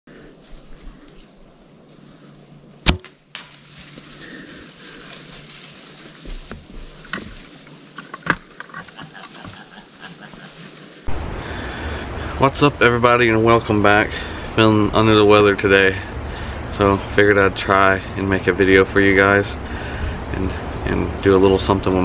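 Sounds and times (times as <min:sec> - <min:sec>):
quiet woodland background: 0:00.1 - 0:22.0
bow release crack: 0:02.8 - 0:04.0.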